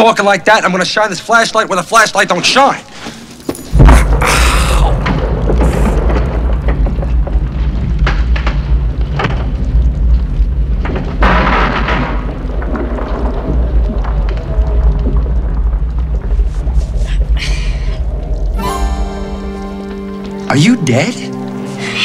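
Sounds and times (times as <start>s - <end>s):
crumbling rock and falling debris: 3.2s - 19.5s
deep continuous rumble: 3.8s - 18.6s
dramatic music: 17.5s - 22.0s.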